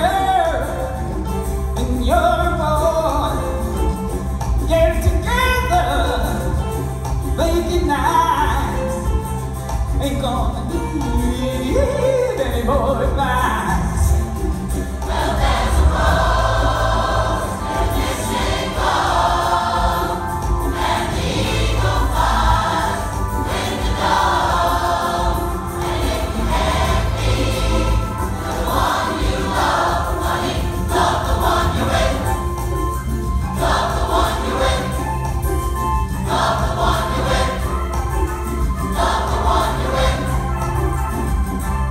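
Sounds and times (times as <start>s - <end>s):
choir singing rock song: 14.4s - 40.9s.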